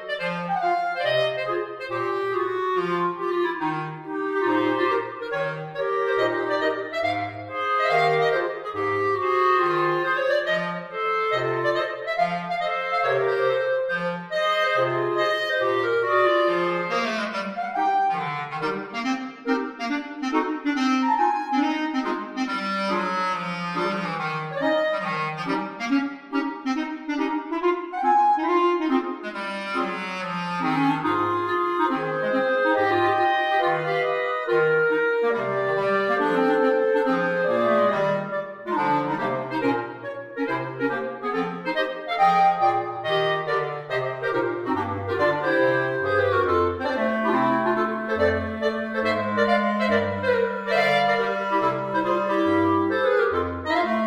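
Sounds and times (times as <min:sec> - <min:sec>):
bass clarinet notes: 0:00.0 - 0:54.0.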